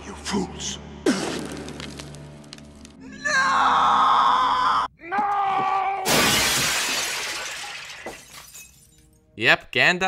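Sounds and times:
glass shattering: 6.1 - 9.2
glass pieces clinking: 6.4 - 9.2.

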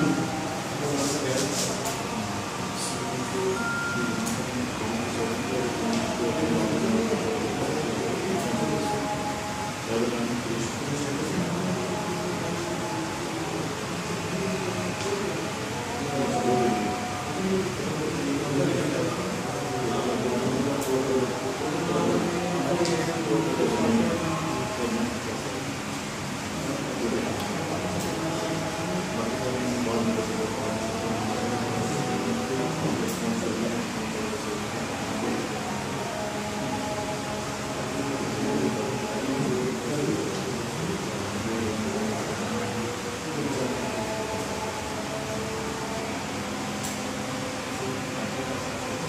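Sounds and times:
fan humming: 0.0 - 49.0
indistinct talking: 0.0 - 49.0
murmur of voices: 0.0 - 49.0.

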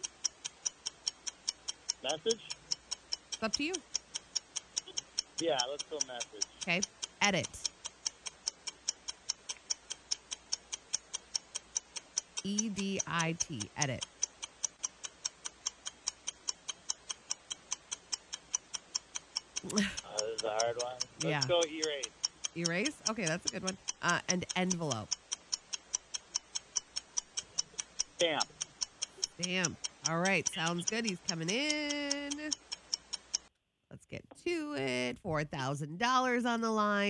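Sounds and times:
countdown timer ticking: 0.0 - 33.4.

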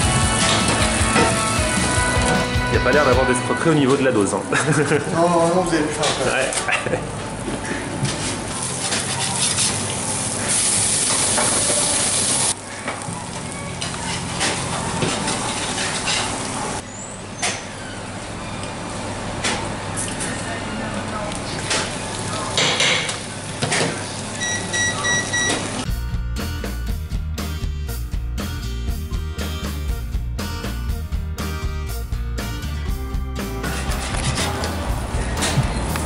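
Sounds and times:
music: 0.0 - 4.9, 13.0 - 15.7, 25.9 - 36.0
sandwich sizzling in a pan: 8.5 - 12.8.

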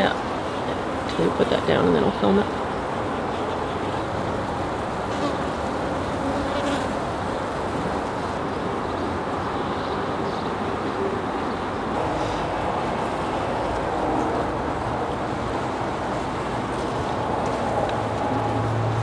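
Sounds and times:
bees buzzing: 0.1 - 9.7.

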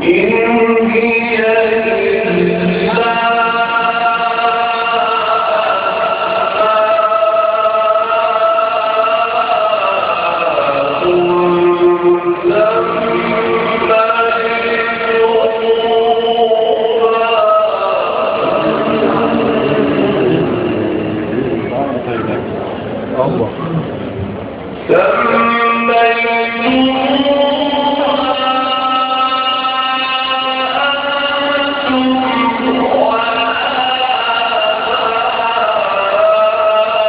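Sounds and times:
person chanting recitation: 0.0 - 22.7, 24.8 - 37.0
murmur of many voices: 0.0 - 37.0.

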